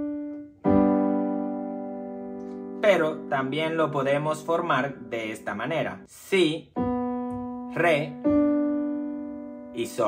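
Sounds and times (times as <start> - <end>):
piano chord struck and held: 0.0 - 10.0.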